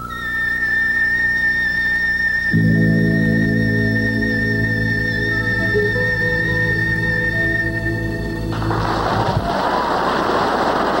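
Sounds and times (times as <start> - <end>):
orchestra low notes: 1.7 - 9.8
audience applauding: 8.5 - 11.0.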